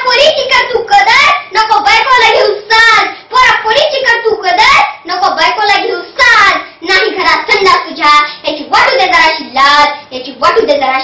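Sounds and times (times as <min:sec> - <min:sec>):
girl chanting verse: 0:00.0 - 0:11.0.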